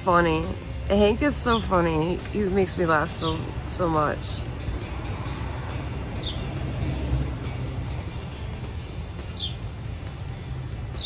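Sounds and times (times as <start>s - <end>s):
bird chirping: 1.4s - 11.0s.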